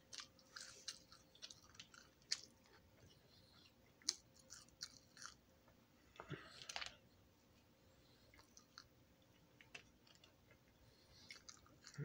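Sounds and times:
person chewing french fry: 0:00.0 - 0:05.5, 0:08.0 - 0:12.0.

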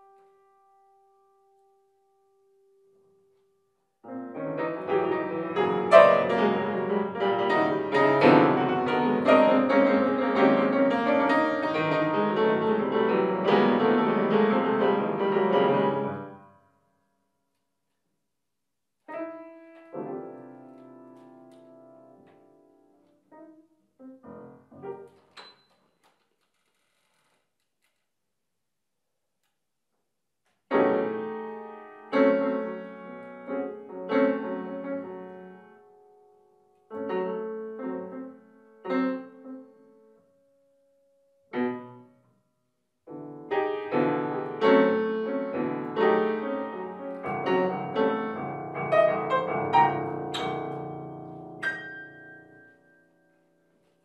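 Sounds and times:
grand piano playing: 0:04.1 - 0:16.4, 0:19.1 - 0:25.3, 0:30.7 - 0:40.0, 0:43.1 - 0:53.2.

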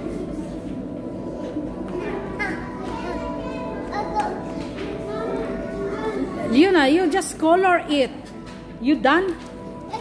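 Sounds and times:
background music: 0:00.0 - 0:10.0
children's voices in a hall: 0:00.0 - 0:10.0.

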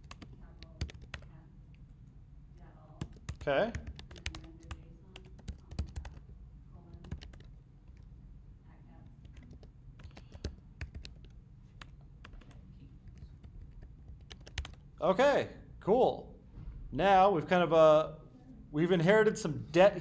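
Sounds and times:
computer keyboard typing: 0:00.0 - 0:01.4, 0:03.0 - 0:08.2, 0:09.2 - 0:14.9.

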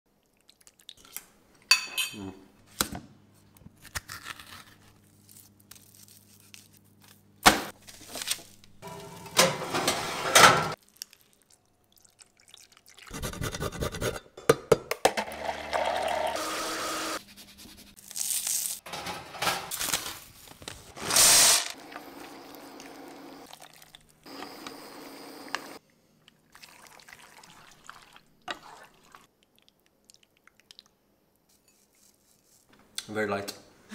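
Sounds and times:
blender running: 0:15.1 - 0:17.2.

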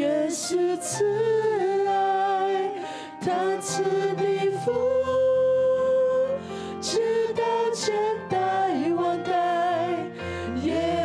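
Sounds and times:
soft musical accompaniment: 0:00.0 - 0:11.0.

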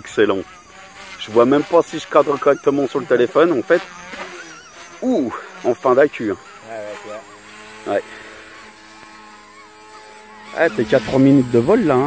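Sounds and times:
toy helicopter rotors whining: 0:00.0 - 0:12.0.

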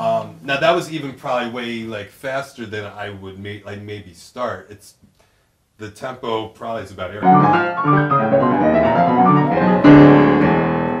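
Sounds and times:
grand piano played slowly: 0:07.2 - 0:11.0.

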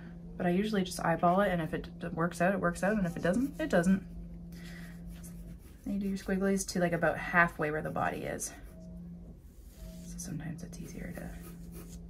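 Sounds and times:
pencil scratching on paper: 0:04.9 - 0:07.2, 0:10.8 - 0:12.0.

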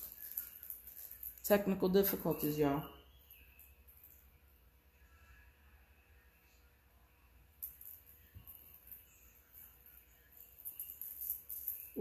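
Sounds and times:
chain bracelet jingling: 0:00.0 - 0:04.4, 0:07.6 - 0:12.0.

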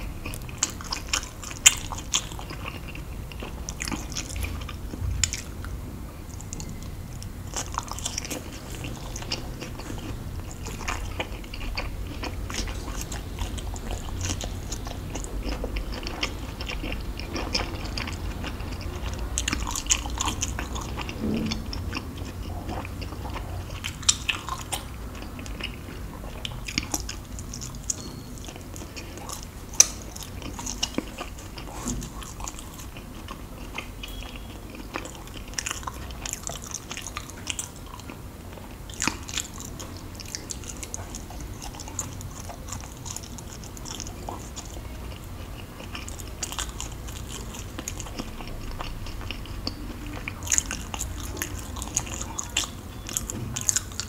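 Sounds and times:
close-miked chewing: 0:00.0 - 0:54.0.

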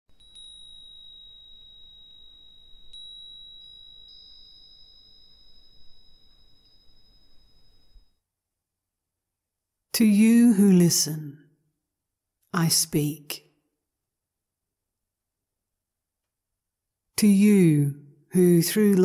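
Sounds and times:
small high-pitched bell ringing: 0:00.1 - 0:08.2.

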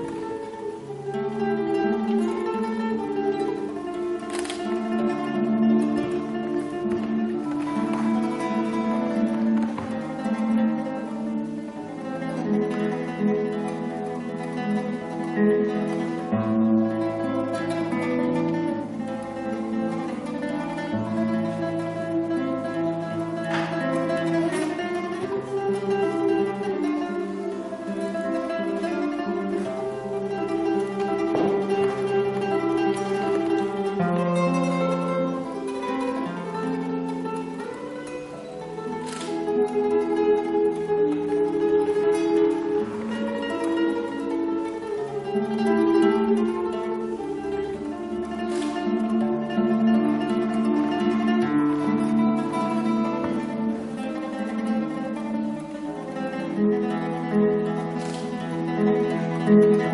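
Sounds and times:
classical guitar fingerstyle: 0:00.0 - 0:59.9.

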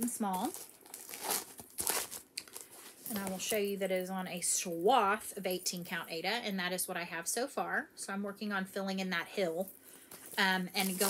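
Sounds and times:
paper and fabric rustling: 0:00.0 - 0:03.7, 0:10.1 - 0:11.0.

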